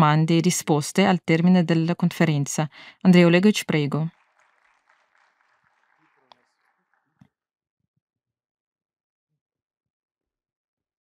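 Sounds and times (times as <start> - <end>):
faint audience applause: 3.7 - 7.2.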